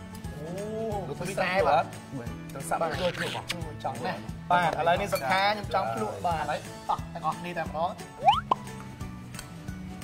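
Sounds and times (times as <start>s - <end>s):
background music: 0.0s - 10.0s
upward-sliding bloop sound effect: 8.2s - 8.6s.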